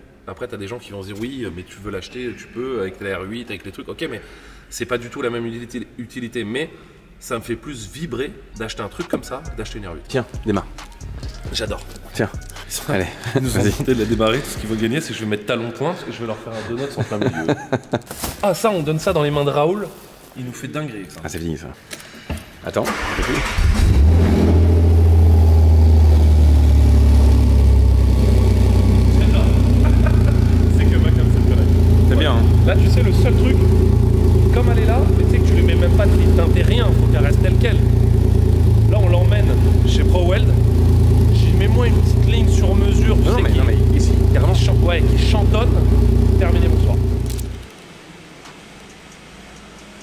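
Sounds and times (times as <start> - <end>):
people talking: 7.3 - 17.8, 18.4 - 21.8, 29.0 - 33.8, 34.5 - 38.0, 38.8 - 40.6, 41.2 - 47.0
car engine idling: 22.9 - 47.7.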